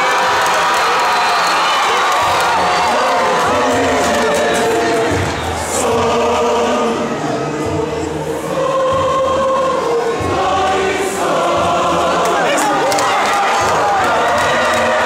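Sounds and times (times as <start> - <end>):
choir singing sustained chords: 2.2 - 15.0.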